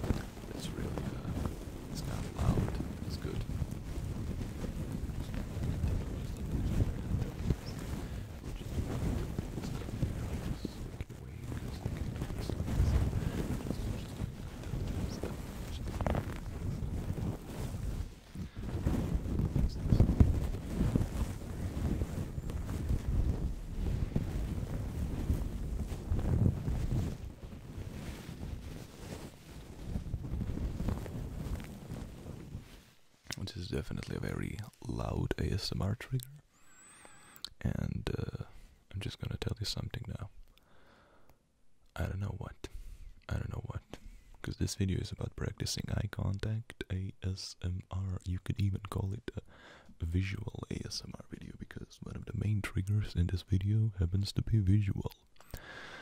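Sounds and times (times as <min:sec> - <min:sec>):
paper crumpling against microphone: 0:00.0 - 0:35.6.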